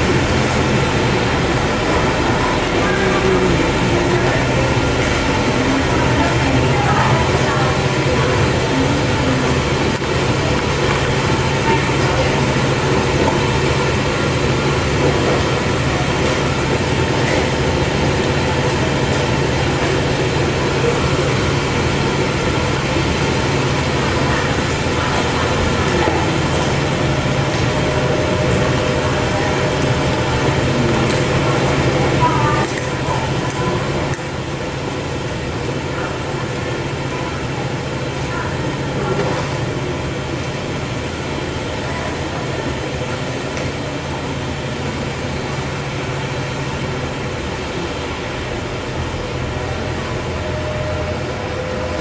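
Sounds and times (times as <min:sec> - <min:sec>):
constant low hum: 0:00.0 - 0:52.0
factory machinery din: 0:00.0 - 0:52.0.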